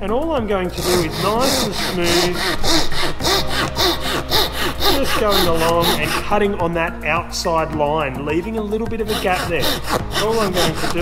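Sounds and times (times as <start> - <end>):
saw cutting wood: 0.6 - 6.6, 9.0 - 11.0.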